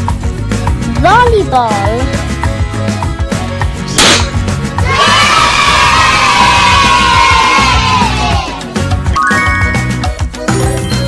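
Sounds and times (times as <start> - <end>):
backing music: 0.0 - 11.0
confetti cannon pop: 3.9 - 4.4
children cheering and shouting: 4.8 - 8.8.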